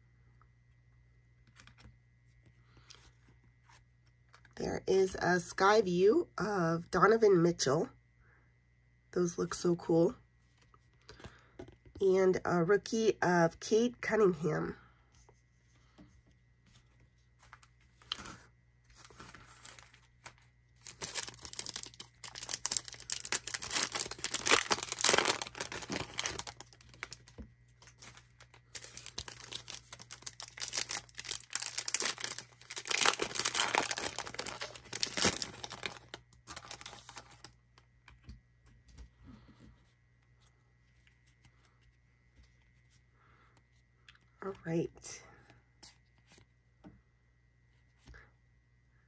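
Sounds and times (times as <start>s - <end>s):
soft card handling: 1.4s - 4.5s, 15.2s - 44.2s, 45.8s - 46.5s
card pack wrapper tearing and crinkling: 19.0s - 37.6s.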